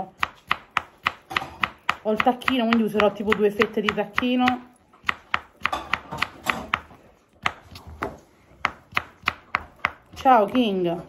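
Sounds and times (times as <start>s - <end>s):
knife tapping on cutting board: 0.2s - 10.2s.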